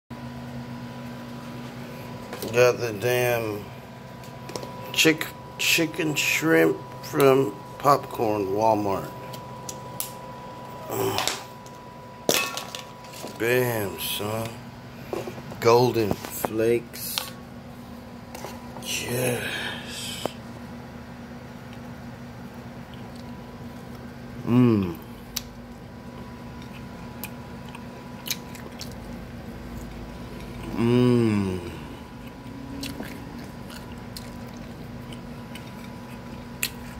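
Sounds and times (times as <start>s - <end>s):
electrical hum with whine: 0.1s - 36.9s
person chewing crunchy food: 26.1s - 36.9s.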